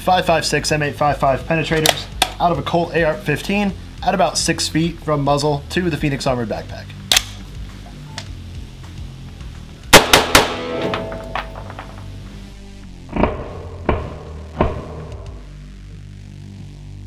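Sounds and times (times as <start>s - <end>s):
background music: 0.0s - 17.0s
rifle shots ringing: 9.9s - 11.9s
dull thuds: 13.1s - 15.6s.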